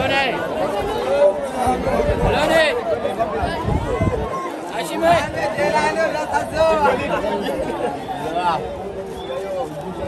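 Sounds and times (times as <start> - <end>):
crowd chatter: 0.0 - 10.0
spectators talking and calling out: 0.0 - 10.0.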